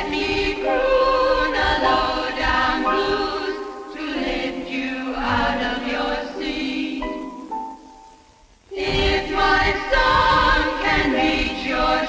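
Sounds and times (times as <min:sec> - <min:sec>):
choir-like voices in harmony: 0:00.0 - 0:07.9, 0:08.7 - 0:12.0.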